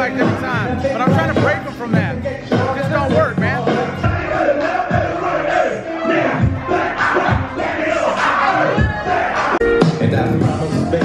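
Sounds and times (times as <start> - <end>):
crowd shouting and singing along: 0.0 - 11.0
loud party music: 0.0 - 11.0.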